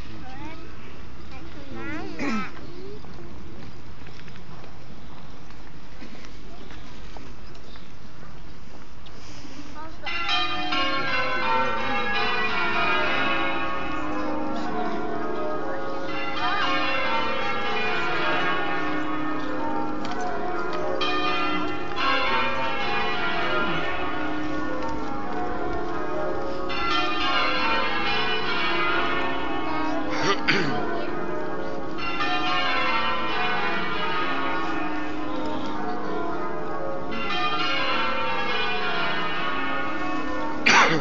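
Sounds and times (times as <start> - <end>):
church bells pealing: 9.9 - 41.0.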